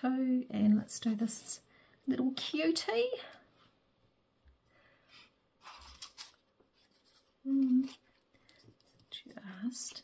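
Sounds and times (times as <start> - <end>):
paper rustling: 5.6 - 10.0.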